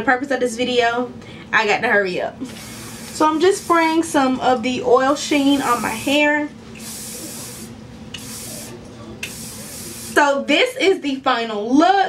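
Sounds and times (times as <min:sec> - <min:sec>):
aerosol spray hissing: 0:02.5 - 0:04.0, 0:05.2 - 0:10.2.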